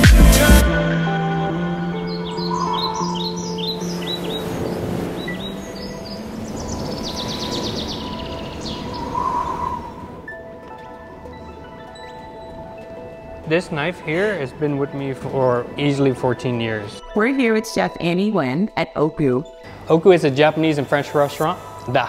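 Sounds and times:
soft music with held tones: 0.0s - 9.5s, 10.1s - 22.0s
birds chirping: 1.1s - 22.0s
bird trilling rapidly: 2.1s - 10.2s.

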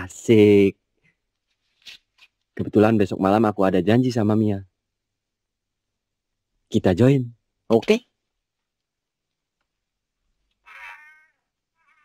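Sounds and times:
cat meowing: 10.6s - 12.0s.

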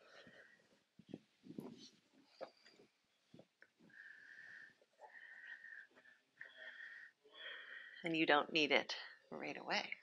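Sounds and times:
whistling breaths: 3.8s - 8.0s.

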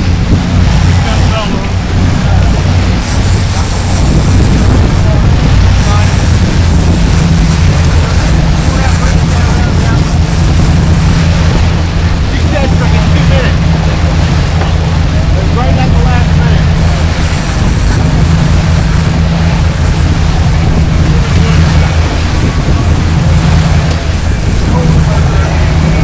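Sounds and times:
boat engines running: 0.0s - 26.0s
water churning: 0.0s - 26.0s.

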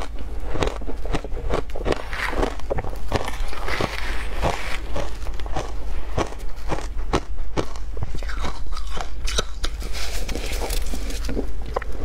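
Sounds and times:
ice crunching between teeth: 0.0s - 11.9s.

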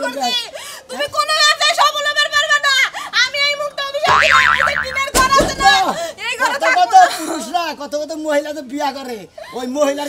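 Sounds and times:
cartoon boing sound effect: 4.1s - 5.4s.

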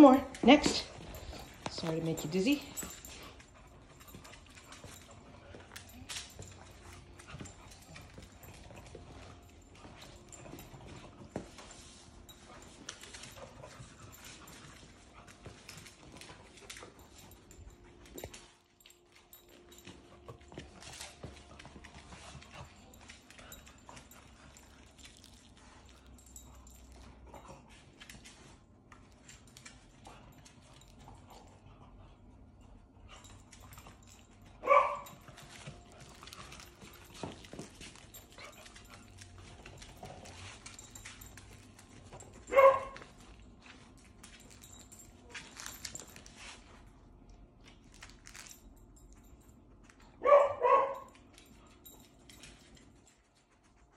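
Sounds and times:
dog barking: 34.6s - 35.2s, 42.5s - 43.0s, 50.2s - 51.1s.

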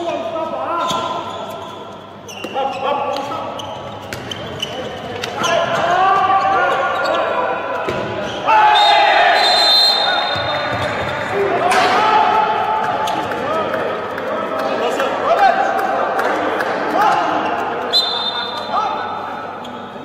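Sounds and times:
ball bouncing on indoor court: 2.3s - 6.3s, 7.8s - 8.5s, 10.1s - 13.6s
players shouting: 5.4s - 13.8s.

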